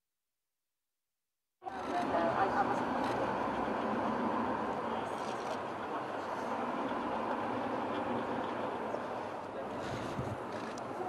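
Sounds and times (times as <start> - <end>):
street traffic hum: 1.6 - 11.0.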